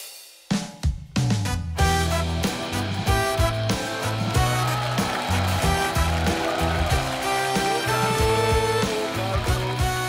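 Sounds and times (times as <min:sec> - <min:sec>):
band playing pop-rock: 0:01.7 - 0:10.0.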